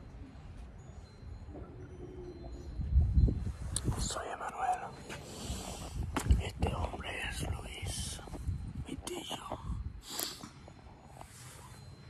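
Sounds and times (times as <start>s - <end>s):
man speaking softly: 3.8s - 5.0s, 6.4s - 9.8s.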